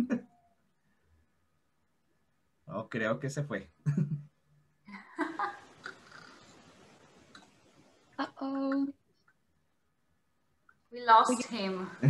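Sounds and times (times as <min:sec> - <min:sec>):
woman laughing: 0:04.9 - 0:05.8
faint line hiss: 0:04.9 - 0:09.0.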